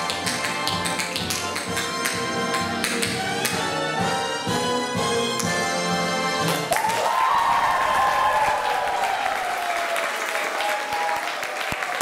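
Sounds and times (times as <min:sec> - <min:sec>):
instrumental backing music: 0:00.0 - 0:06.7.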